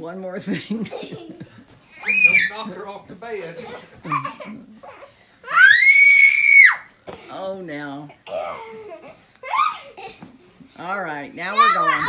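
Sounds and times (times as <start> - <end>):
child screaming: 2.0 - 2.5, 5.5 - 6.9.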